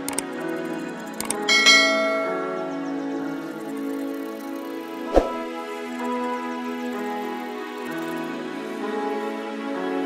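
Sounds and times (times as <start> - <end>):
quick clicks: 0.0 - 1.5
soft background music: 0.0 - 10.0
bright bell chime: 1.5 - 3.2.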